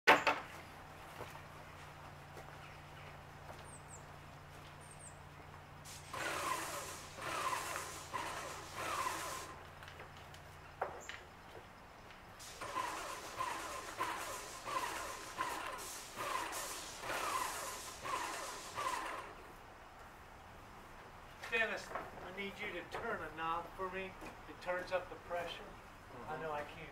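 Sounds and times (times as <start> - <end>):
pressure spray hitting wood: 5.8 - 9.6, 12.4 - 19.4.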